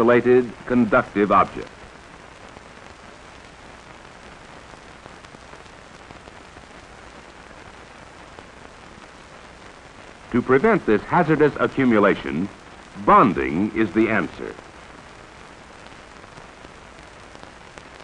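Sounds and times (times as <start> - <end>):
fine crackling hiss: 0.0 - 18.0.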